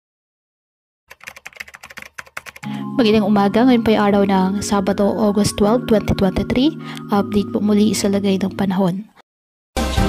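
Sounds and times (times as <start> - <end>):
computer keyboard typing: 1.1 - 2.7
music with low steady tones: 2.6 - 8.8.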